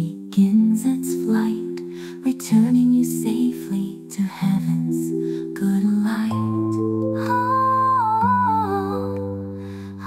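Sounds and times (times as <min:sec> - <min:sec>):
wordless melody line: 0:00.2 - 0:10.0.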